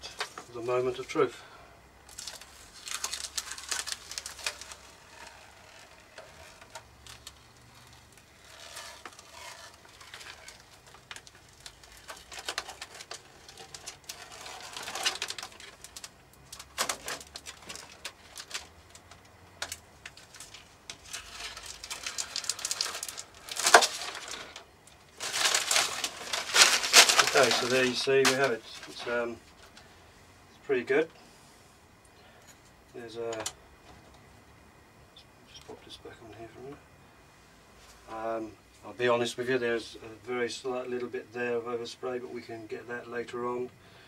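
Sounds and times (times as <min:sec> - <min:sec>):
masking tape peeling and crackling: 0:02.0 - 0:29.8.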